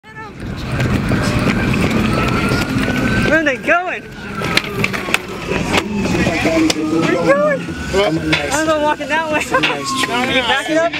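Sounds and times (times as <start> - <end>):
skateboard wheels rolling on concrete: 0.1 - 10.9
clicks from pavement joints: 0.4 - 6.9.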